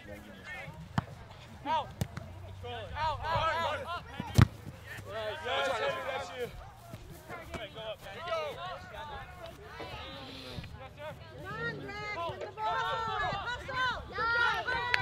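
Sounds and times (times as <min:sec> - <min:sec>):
players shouting: 0:01.6 - 0:10.6, 0:11.4 - 0:15.0
soccer ball being kicked: 0:04.1 - 0:05.1.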